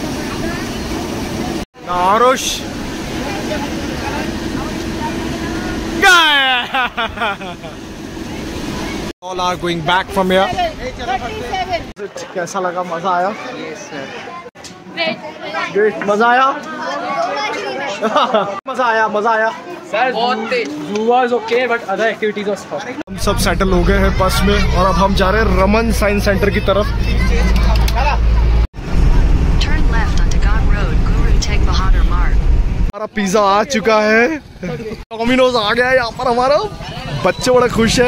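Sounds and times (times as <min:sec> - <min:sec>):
bus engine and road rumble: 0:00.0 - 0:11.9, 0:23.1 - 0:32.9
voices chattering: 0:00.0 - 0:32.3, 0:33.0 - 0:38.0
people talking: 0:01.9 - 0:07.7, 0:23.1 - 0:32.4, 0:33.0 - 0:38.0.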